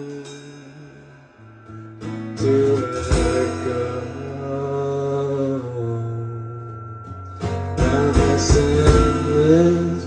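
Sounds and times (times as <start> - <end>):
person singing a long note: 2.4 - 6.9.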